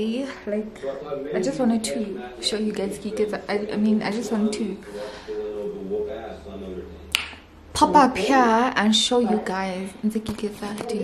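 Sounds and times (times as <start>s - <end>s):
finger snap: 7.1s - 7.5s
woman speaking: 7.7s - 11.0s.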